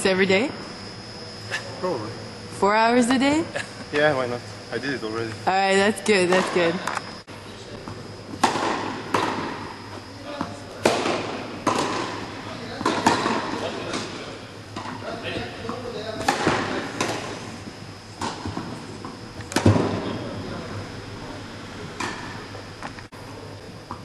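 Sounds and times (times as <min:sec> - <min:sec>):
rackets striking tennis ball: 0:06.2 - 0:07.0, 0:08.3 - 0:09.8, 0:10.4 - 0:15.0, 0:15.6 - 0:17.4, 0:18.2 - 0:20.1.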